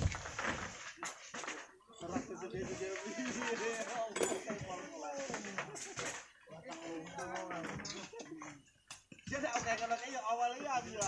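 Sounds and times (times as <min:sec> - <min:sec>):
people talking: 0:01.4 - 0:08.6, 0:09.3 - 0:11.0.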